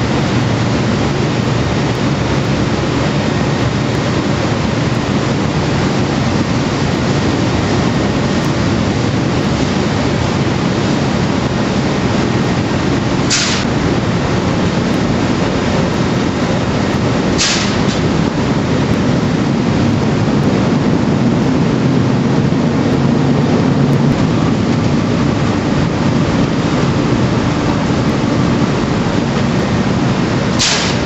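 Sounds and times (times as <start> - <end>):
machinery droning: 0.0 - 31.0
short hiss: 13.3 - 13.6, 17.4 - 18.0, 30.6 - 31.0.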